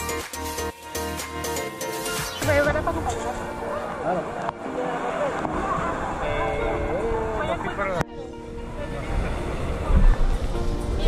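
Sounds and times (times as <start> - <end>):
background music: 0.0 - 11.0
people talking: 2.4 - 3.4.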